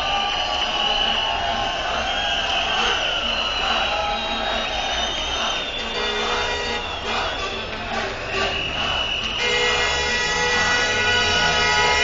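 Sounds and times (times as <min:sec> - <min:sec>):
crowd noise: 0:00.0 - 0:12.0
vehicle horns blasting: 0:02.6 - 0:04.7, 0:05.4 - 0:12.0.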